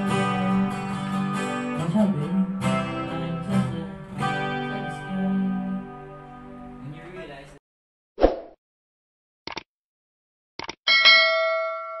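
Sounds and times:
notification bell ding: 0:10.9 - 0:12.0.

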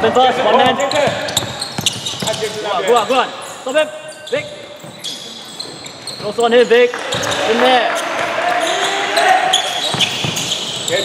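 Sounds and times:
basketball bouncing: 0:00.6 - 0:02.5, 0:06.9 - 0:07.6, 0:09.9 - 0:10.5
shoe squeaks on hardwood: 0:00.6 - 0:11.0.

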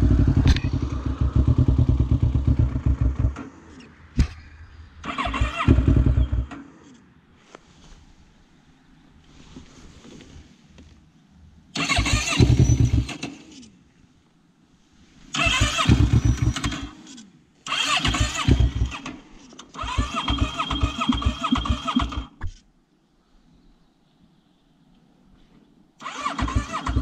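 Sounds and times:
electric starter cranking engine: 0:11.8 - 0:13.6, 0:15.4 - 0:22.3, 0:26.0 - 0:27.0.

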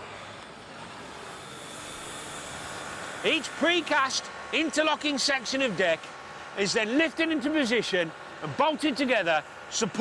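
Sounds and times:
construction site background noise: 0:00.0 - 0:10.0.

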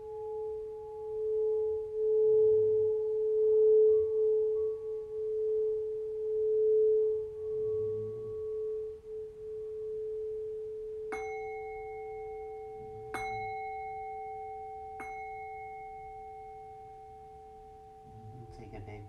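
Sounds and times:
crystal singing bowl tone: 0:00.0 - 0:19.0.

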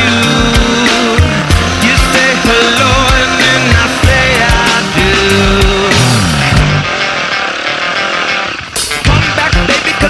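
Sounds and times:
dirt bike engine running: 0:00.0 - 0:10.0
rock music: 0:00.0 - 0:10.0.

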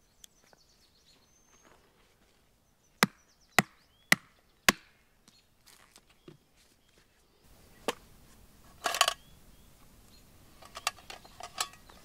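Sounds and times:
hatchet chopping wood: 0:03.0 - 0:05.0.

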